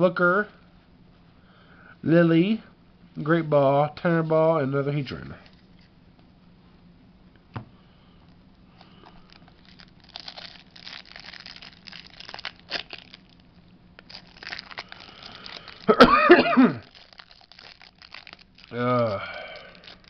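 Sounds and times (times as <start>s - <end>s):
plastic bag crinkling: 8.8s - 20.0s
loud cough: 15.9s - 16.9s.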